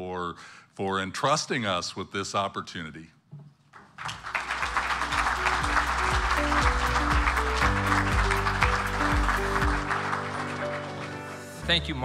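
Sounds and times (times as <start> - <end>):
audience applauding: 3.8 - 12.0
instrumental music with beat: 4.7 - 11.5.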